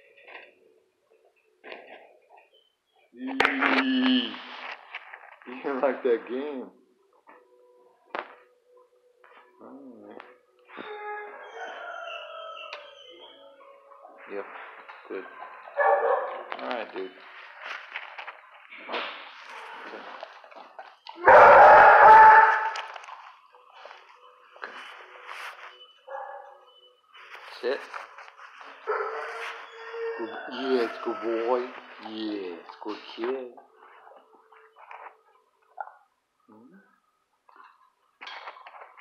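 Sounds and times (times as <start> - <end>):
dog barking: 15.6 - 16.6, 21.2 - 23.0, 26.1 - 26.7, 28.8 - 30.1.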